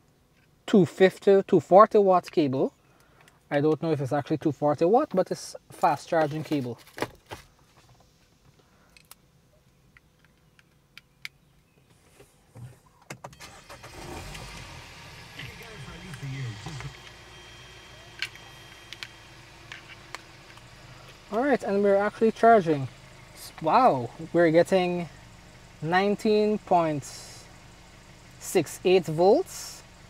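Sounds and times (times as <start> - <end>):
car engine starting and idling: 13.2 - 30.0.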